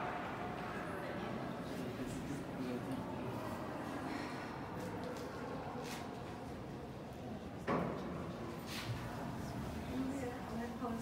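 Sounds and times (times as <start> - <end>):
low hum of hall: 0.0 - 11.0.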